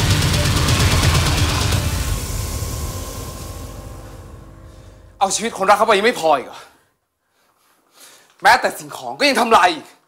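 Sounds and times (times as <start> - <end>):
dramatic orchestral music: 0.0 - 6.1.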